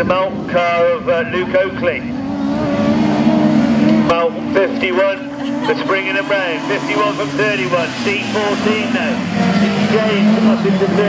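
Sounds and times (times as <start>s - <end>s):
loudspeaker commentary: 0.0s - 2.2s, 4.0s - 11.0s
race car engines: 0.0s - 11.0s.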